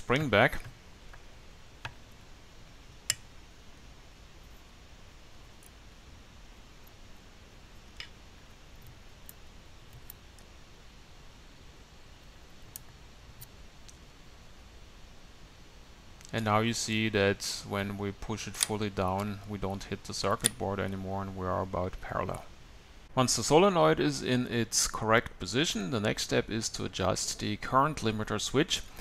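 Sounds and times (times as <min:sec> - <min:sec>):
small faint clicks: 0:07.8 - 0:10.5, 0:12.2 - 0:14.1.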